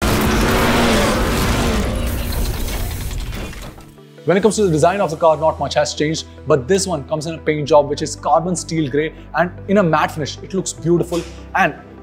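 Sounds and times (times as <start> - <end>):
loud glitchy mechanical noise: 0.0 - 3.9.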